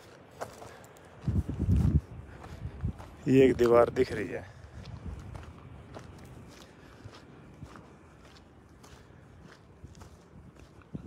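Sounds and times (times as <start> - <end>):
footsteps on stony dirt: 0.0 - 11.0.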